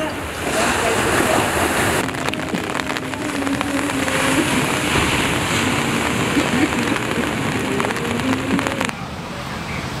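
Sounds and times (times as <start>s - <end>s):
rough sea surf: 0.0s - 10.0s
rapid crackle of clicks: 2.0s - 8.9s.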